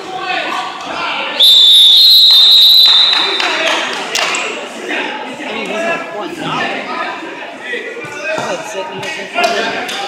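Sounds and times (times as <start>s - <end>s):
referee's whistle blast: 1.4s - 3.6s
crowd murmur: 3.6s - 10.0s.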